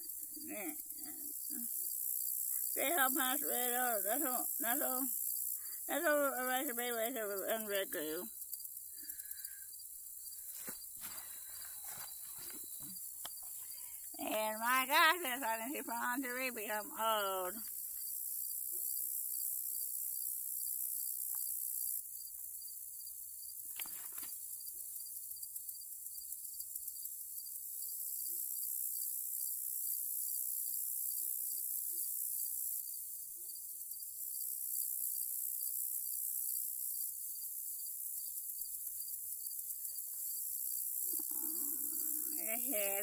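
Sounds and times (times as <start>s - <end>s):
field insects chorus: 0.0s - 43.0s
faint handling sounds: 10.4s - 13.7s.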